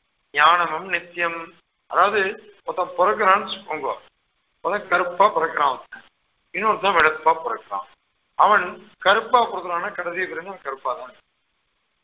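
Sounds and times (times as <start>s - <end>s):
man lecturing: 0.4s - 11.2s.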